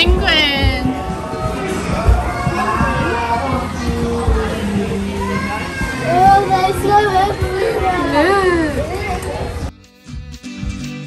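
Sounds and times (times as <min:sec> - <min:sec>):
children chattering and calling out: 0:00.0 - 0:09.7.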